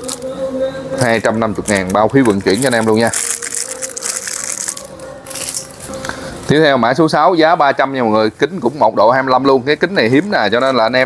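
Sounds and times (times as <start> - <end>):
plastic cases rustling: 1.5 - 5.9.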